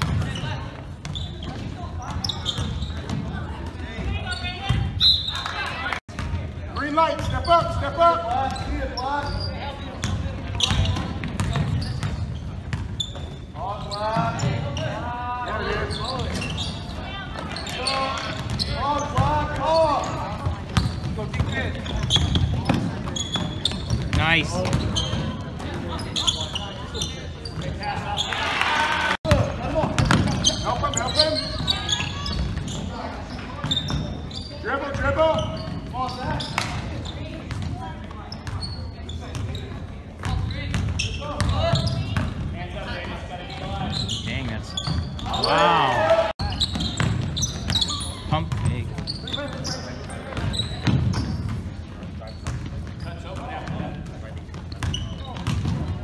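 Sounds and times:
people calling out in gym: 13.0 - 20.4, 24.2 - 37.4, 43.4 - 48.4.

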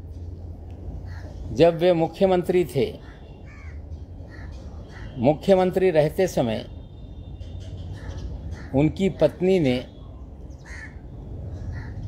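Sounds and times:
low steady rumble: 0.0 - 12.0
harsh bird calls: 1.0 - 5.8, 7.0 - 12.0.

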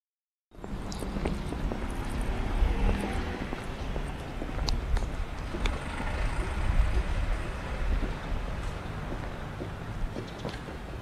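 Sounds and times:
low uneven street rumble: 0.6 - 11.0.

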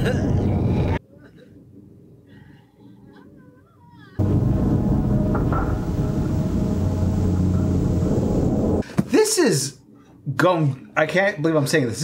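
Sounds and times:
horror soundtrack music: 4.2 - 8.8.

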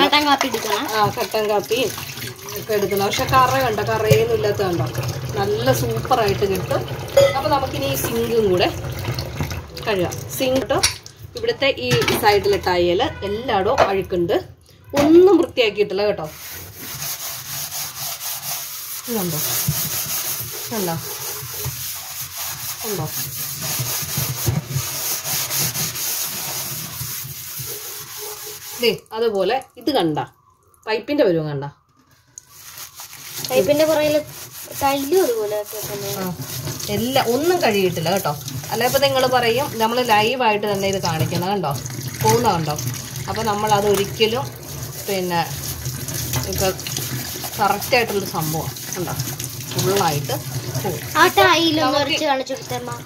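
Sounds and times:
scrubbing wet steel sink: 0.0 - 11.1, 16.0 - 29.6, 32.3 - 53.0
person talking: 49.8 - 53.0.

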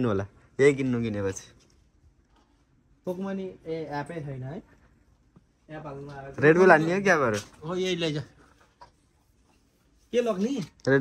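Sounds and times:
man speaking: 5.7 - 8.4.

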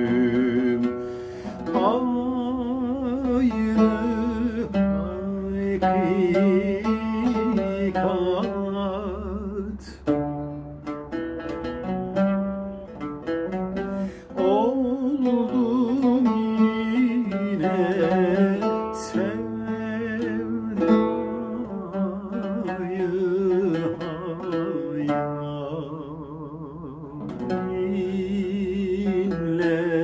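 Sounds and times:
man singing with vibrato: 0.0 - 10.7, 11.8 - 30.0
plucked oud: 0.0 - 30.0.

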